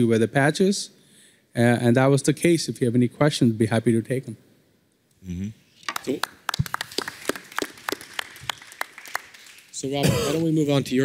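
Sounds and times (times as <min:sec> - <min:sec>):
people clapping: 0:05.9 - 0:10.3.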